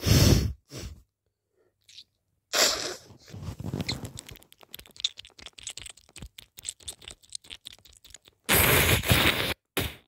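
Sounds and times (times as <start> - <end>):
person sneezing: 2.5 - 3.1.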